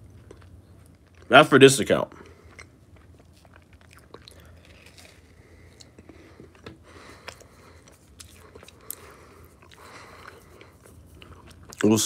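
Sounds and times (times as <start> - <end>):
man speaking: 1.3 - 2.2, 11.8 - 12.0.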